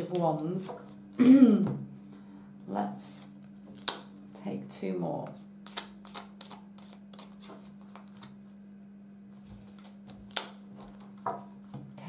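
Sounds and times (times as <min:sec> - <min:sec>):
cards being shuffled: 0:03.7 - 0:04.1, 0:05.2 - 0:08.5, 0:09.5 - 0:11.9.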